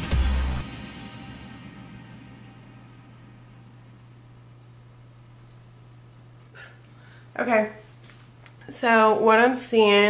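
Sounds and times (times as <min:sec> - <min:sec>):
low hum: 0:00.0 - 0:08.6.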